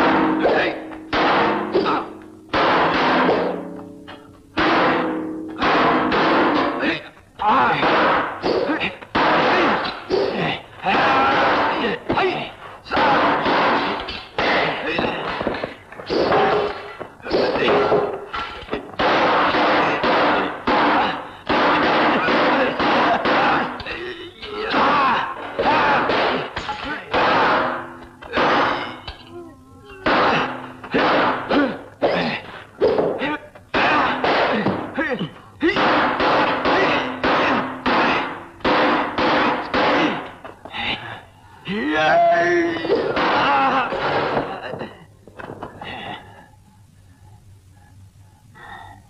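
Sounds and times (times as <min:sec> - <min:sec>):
fight blows and weapon strikes: 0:00.0 - 0:29.2, 0:29.9 - 0:41.1
hits and weapon clashes: 0:12.9 - 0:29.3
yells and shouts: 0:41.7 - 0:43.7.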